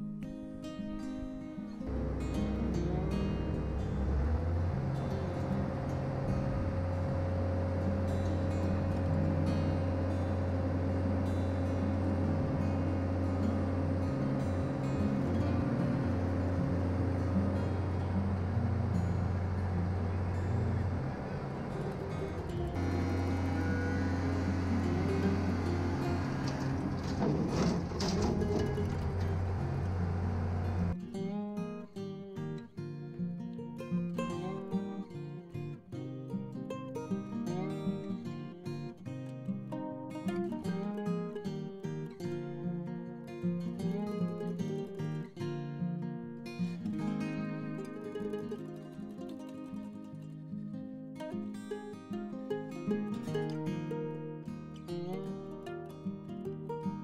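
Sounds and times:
acoustic guitar music: 0:00.0 - 0:57.0
diesel engine running: 0:01.8 - 0:31.0.

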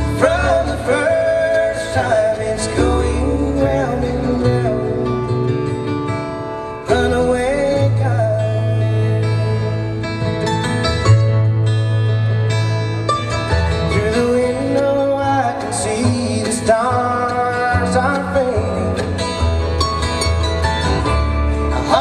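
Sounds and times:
acoustic guitar: 0:00.0 - 0:22.0
mandolin: 0:00.0 - 0:22.0
upright bass: 0:00.0 - 0:22.0.

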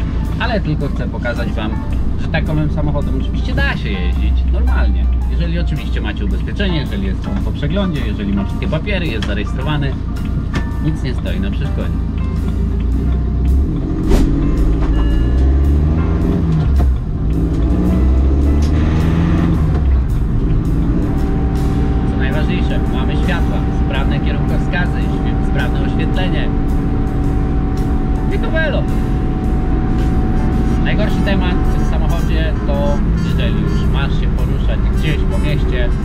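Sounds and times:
diesel engine drone in car cabin: 0:00.0 - 0:36.0.

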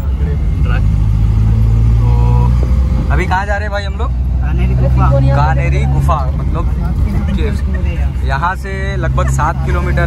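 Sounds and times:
van engine and road noise: 0:00.0 - 0:10.0.

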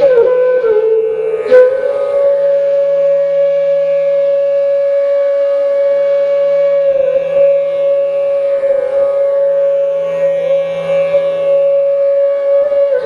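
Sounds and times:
flute long steady note: 0:00.0 - 0:13.0.

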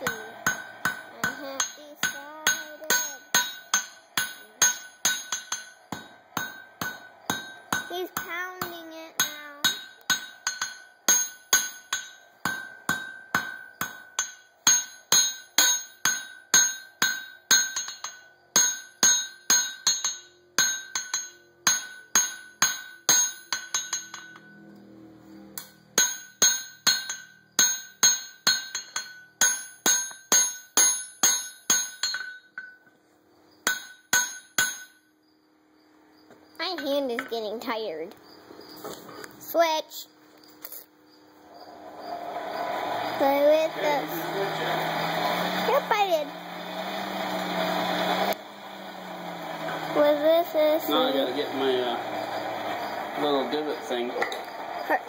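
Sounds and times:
hammer striking steel on anvil: 0:00.0 - 0:24.7, 0:25.5 - 0:32.9, 0:33.6 - 0:35.1.

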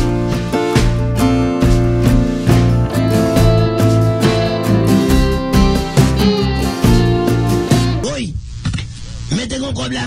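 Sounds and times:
guitar music: 0:00.0 - 0:08.0.

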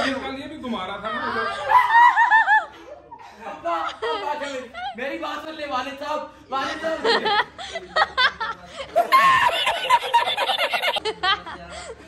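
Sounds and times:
rapid high-pitched laughter: 0:09.0 - 0:11.0.

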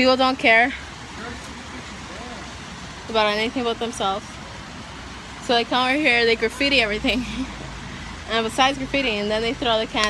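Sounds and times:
distant road traffic: 0:00.0 - 0:10.0.

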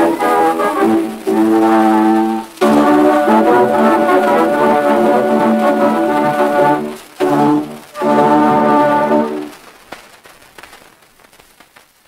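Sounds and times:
orchestra chord with brass: 0:00.0 - 0:09.5
record surface hiss and crackle: 0:00.0 - 0:12.0.

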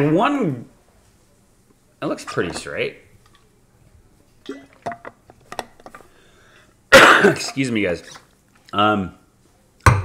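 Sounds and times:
man coughing: 0:06.9 - 0:07.6.

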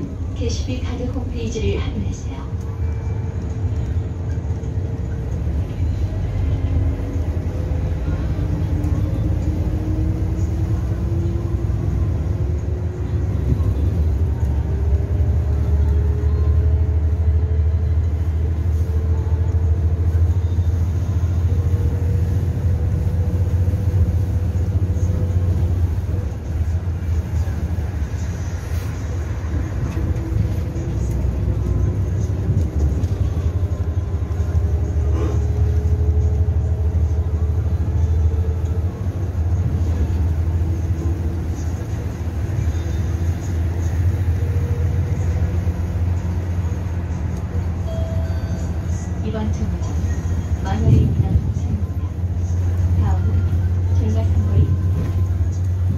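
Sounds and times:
bus engine rumble: 0:00.0 - 0:55.9.

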